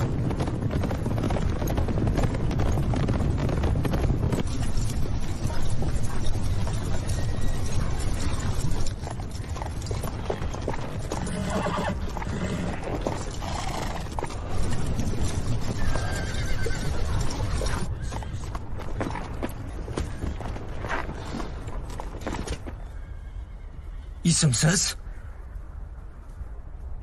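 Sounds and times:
horse hooves clattering: 0.0s - 24.1s
horses neighing: 4.4s - 21.5s.

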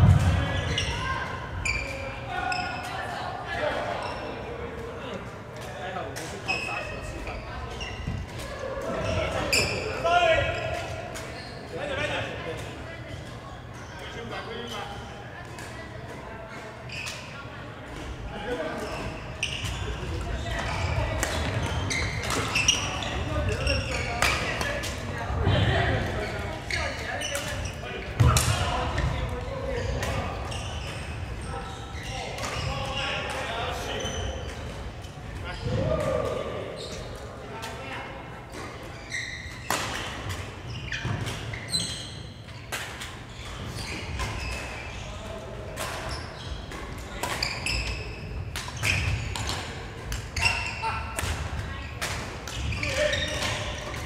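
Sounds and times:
voices chattering: 0.0s - 54.0s.

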